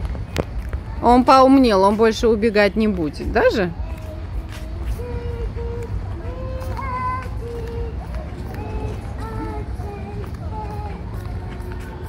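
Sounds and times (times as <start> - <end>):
walking on microphone: 0.0 - 12.0.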